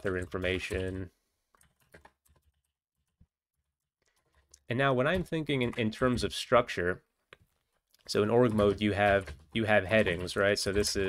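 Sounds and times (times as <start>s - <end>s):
faint keyboard typing: 0.0s - 6.6s, 7.2s - 11.0s.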